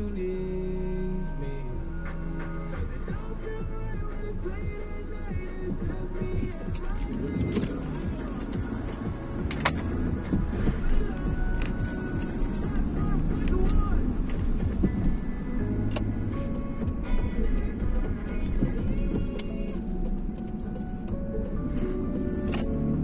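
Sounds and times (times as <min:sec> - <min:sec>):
car driving rumble: 0:00.0 - 0:23.0
pop song on car radio: 0:00.0 - 0:23.0.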